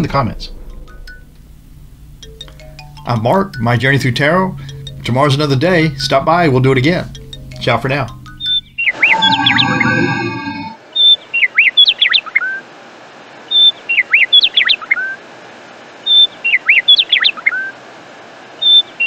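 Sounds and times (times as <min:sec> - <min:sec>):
held musical chord: 0:01.2 - 0:10.8
bird song with sweeping chirps: 0:08.3 - 0:12.6, 0:13.5 - 0:15.2, 0:16.1 - 0:17.7, 0:18.6 - 0:19.0.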